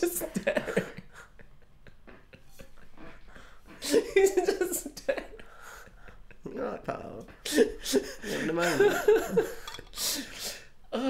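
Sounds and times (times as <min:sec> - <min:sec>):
breathy wheezing laughter: 0:00.4 - 0:06.4.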